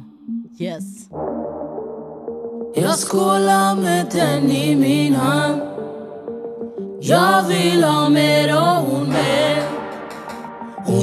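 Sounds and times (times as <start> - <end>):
woman singing: 2.8 - 5.8, 7.0 - 9.9.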